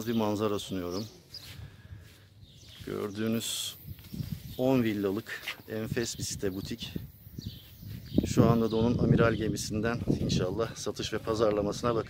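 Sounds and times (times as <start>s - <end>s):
man talking: 0.0s - 1.2s, 2.7s - 3.9s, 4.5s - 7.1s, 8.2s - 12.0s
faint outdoor background noise: 0.0s - 12.0s.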